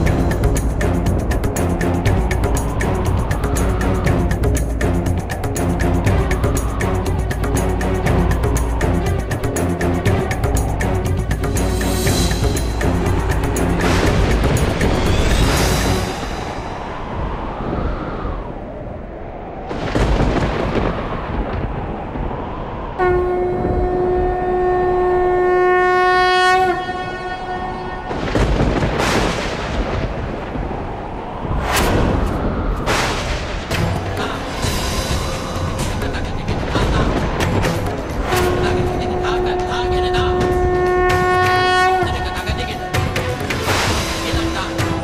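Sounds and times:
dramatic orchestral score: 0:00.0 - 0:17.6, 0:31.5 - 0:45.0
passing train rumble: 0:00.0 - 0:45.0
train horn long note: 0:23.0 - 0:28.2, 0:38.2 - 0:45.0.

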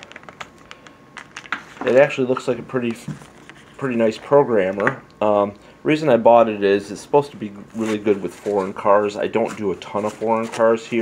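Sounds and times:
man speaking: 0:01.8 - 0:03.2, 0:03.8 - 0:11.0.

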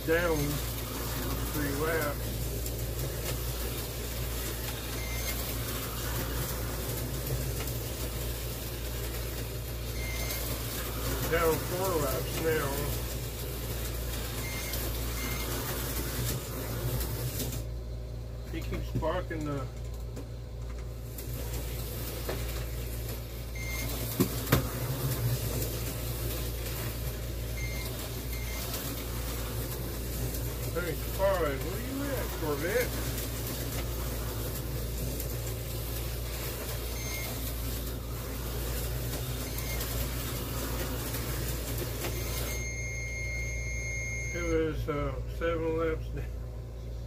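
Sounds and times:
slot car motors whirring: 0:00.0 - 0:46.3.

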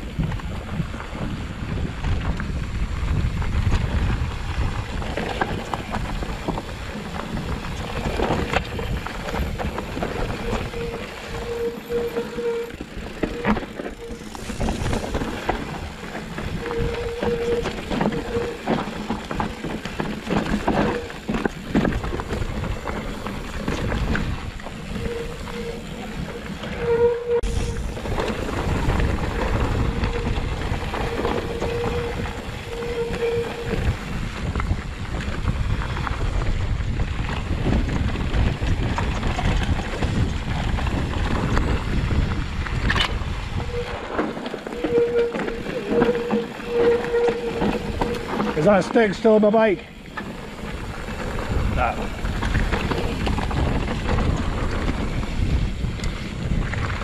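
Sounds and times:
bike rattling over rocks: 0:00.0 - 0:57.0
wind rumbling on microphone: 0:00.0 - 0:57.0.

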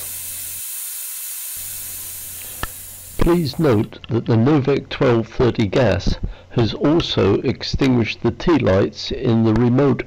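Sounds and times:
gas discharging hiss: 0:00.0 - 0:03.9.

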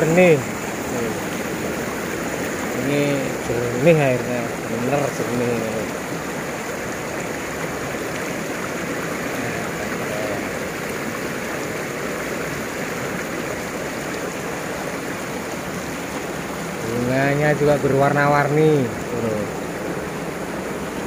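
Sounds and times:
stream rushing over stones: 0:00.0 - 0:21.0.

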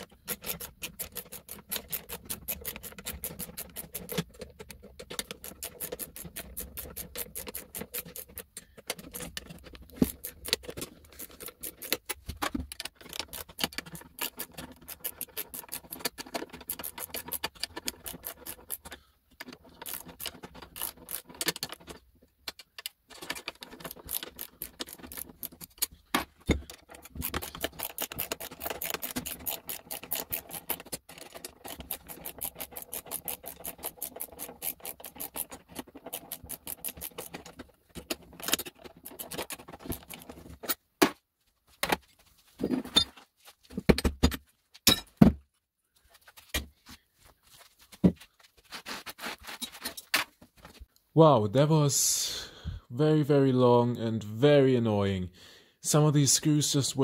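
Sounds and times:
ratchet wrench clicking: 0:00.0 - 0:04.2, 0:05.1 - 0:08.4, 0:19.7 - 0:21.8, 0:23.5 - 0:25.9, 0:27.1 - 0:37.5.

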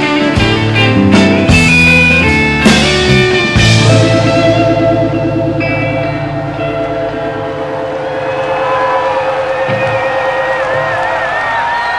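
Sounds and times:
distorted electric guitar chord: 0:03.2 - 0:09.8
high sliding guitar note: 0:03.6 - 0:10.6.

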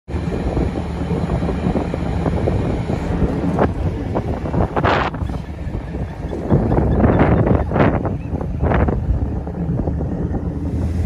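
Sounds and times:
ship engine rumble: 0:00.1 - 0:11.0
wind buffeting microphone: 0:00.1 - 0:11.0.

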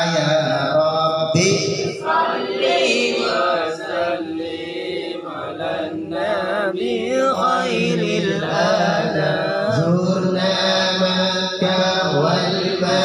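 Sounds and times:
men chanting a devotional song: 0:00.0 - 0:13.0.

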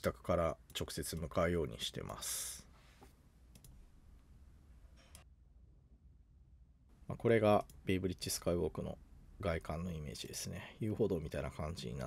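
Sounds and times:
faint room hum: 0:00.0 - 0:12.0
faint mouse clicks: 0:03.0 - 0:03.8.

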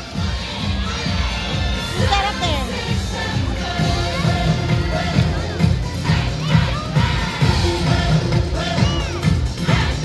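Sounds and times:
crowd cheering: 0:00.0 - 0:10.0
parade music with low beat: 0:00.0 - 0:10.0
children shouting: 0:04.1 - 0:10.0.

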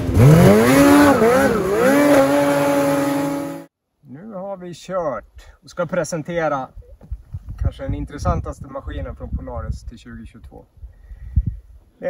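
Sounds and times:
engine revving: 0:00.0 - 0:03.7.

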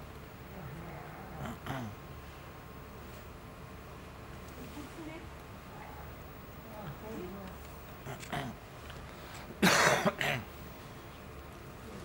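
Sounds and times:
person coughing: 0:01.6 - 0:02.0, 0:09.6 - 0:10.5.

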